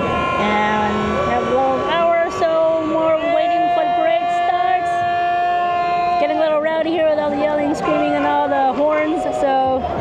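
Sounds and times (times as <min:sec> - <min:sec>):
crowd yelling: 0:00.0 - 0:10.0
horns blowing held notes: 0:00.0 - 0:10.0.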